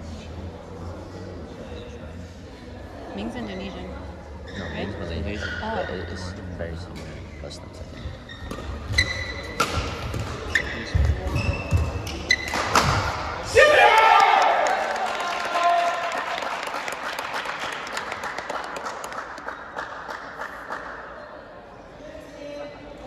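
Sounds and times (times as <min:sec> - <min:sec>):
shoes squeaking: 0:06.9 - 0:13.1
crowd cheering and clapping: 0:13.6 - 0:21.0.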